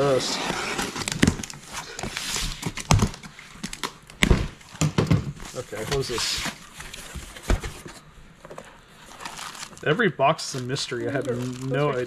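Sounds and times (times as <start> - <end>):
cardboard rustling: 0.0 - 9.9, 10.5 - 12.0
plastic wrapping crinkling: 9.0 - 12.0.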